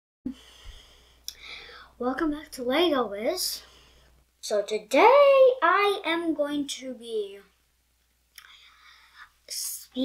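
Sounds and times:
child breathing: 0:00.3 - 0:02.0, 0:03.6 - 0:04.2, 0:08.4 - 0:09.5
child speaking: 0:02.0 - 0:03.7, 0:04.4 - 0:07.6, 0:09.5 - 0:10.0.

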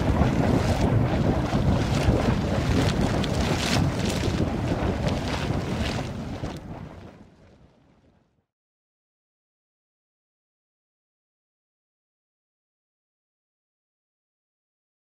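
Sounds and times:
rock crumbling rumble: 0:00.0 - 0:08.2.

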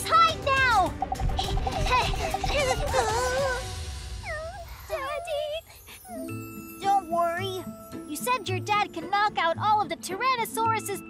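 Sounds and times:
cartoon voice whimpering: 0:01.4 - 0:06.3.

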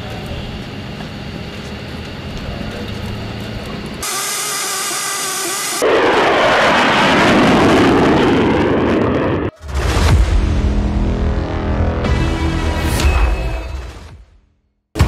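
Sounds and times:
jet rumble: 0:00.0 - 0:12.2
high-pitched turbine whine: 0:00.0 - 0:13.6
loud jet roar passing overhead: 0:04.0 - 0:12.1.

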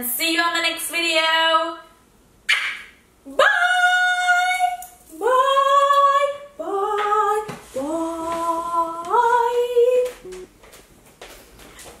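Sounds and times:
woman singing wordless notes: 0:03.3 - 0:10.5.

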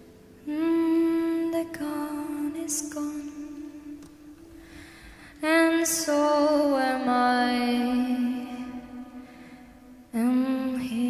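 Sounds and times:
woman singing a long note: 0:10.1 - 0:11.0.

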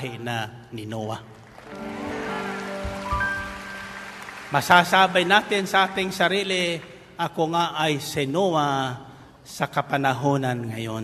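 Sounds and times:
soft sustained chords music: 0:01.7 - 0:06.0
rain hiss: 0:01.8 - 0:05.3.

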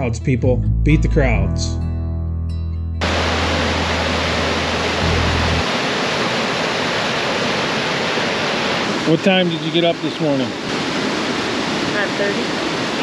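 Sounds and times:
guitar music: 0:00.0 - 0:05.8
river water rushing over rocks: 0:03.0 - 0:13.0.

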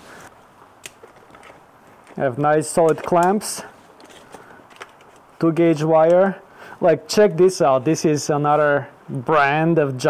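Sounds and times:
cables rustling in plastic case: 0:00.9 - 0:05.3.

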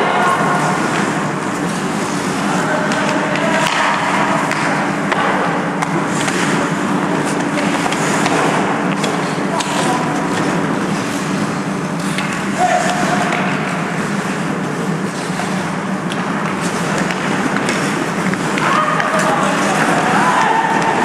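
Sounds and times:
hockey sticks and puck clacking: 0:00.0 - 0:21.0
skate blades scraping ice: 0:00.0 - 0:21.0
steady low hum: 0:00.0 - 0:21.0.

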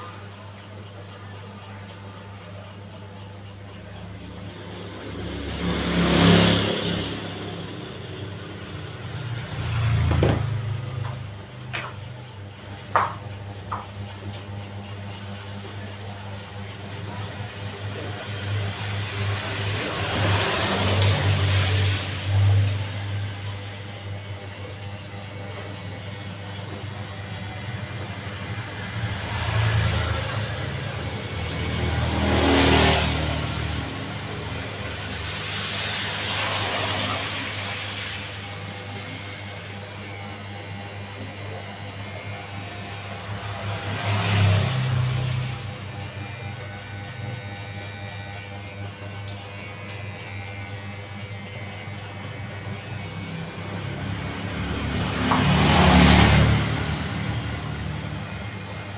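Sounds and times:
electric hair clipper buzzing: 0:04.0 - 0:58.9.

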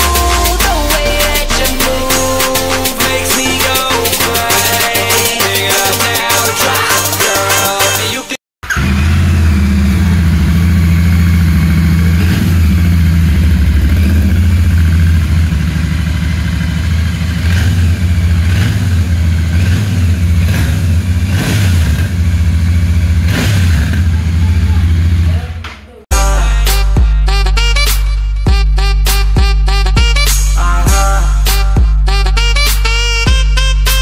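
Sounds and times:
motorcycle engine idling: 0:08.6 - 0:25.6.

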